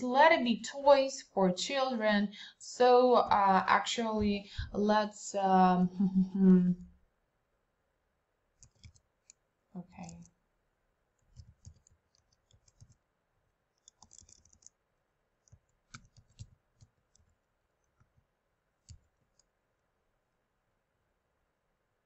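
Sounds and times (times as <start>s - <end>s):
keyboard typing: 8.6s - 10.3s, 11.2s - 13.0s, 13.8s - 14.8s, 15.4s - 17.4s, 18.8s - 19.5s.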